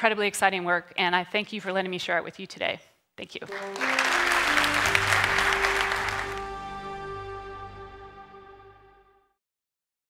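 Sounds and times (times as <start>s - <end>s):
audience applause: 3.5s - 7.4s
instrumental outro music: 3.5s - 9.4s.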